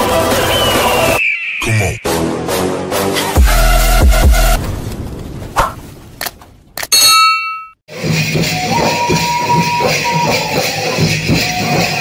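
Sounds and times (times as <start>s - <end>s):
bright bell ding: 6.9s - 7.8s.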